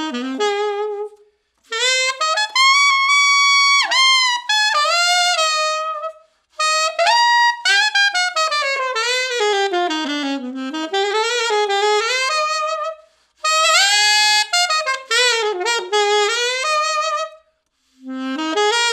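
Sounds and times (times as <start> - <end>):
alto saxophone playing: 0.0 - 18.9.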